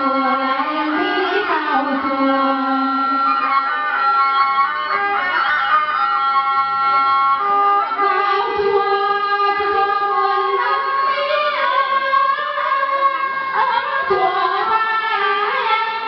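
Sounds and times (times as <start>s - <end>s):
melody of long held notes: 0.0s - 16.0s
string accompaniment: 0.0s - 16.0s.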